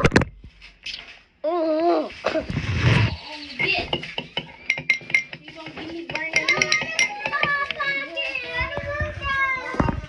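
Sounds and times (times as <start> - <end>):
girl making sing-song sounds: 7.1 - 10.0.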